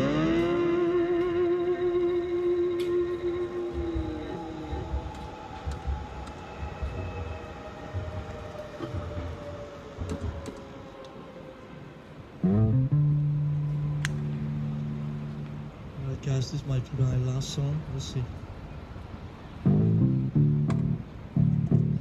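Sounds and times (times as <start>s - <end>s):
electric guitar note with vibrato: 0.0s - 4.9s
faint low rumbles: 0.0s - 22.0s.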